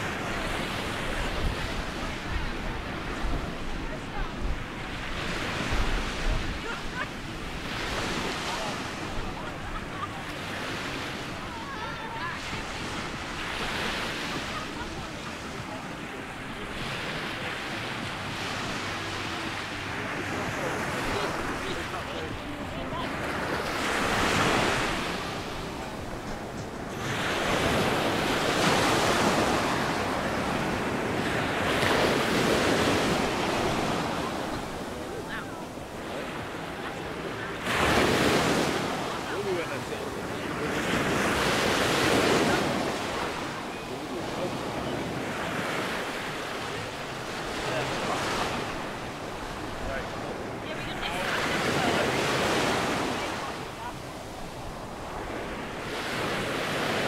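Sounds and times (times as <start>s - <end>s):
waves breaking on beach: 0.0s - 57.0s.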